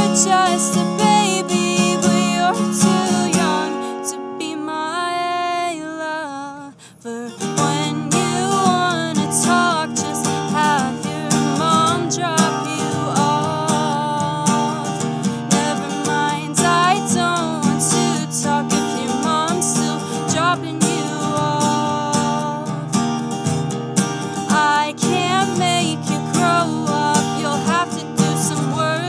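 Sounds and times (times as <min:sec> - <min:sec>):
woman singing: 0:00.0 - 0:23.0, 0:24.4 - 0:29.0
strummed acoustic guitar: 0:00.0 - 0:29.0.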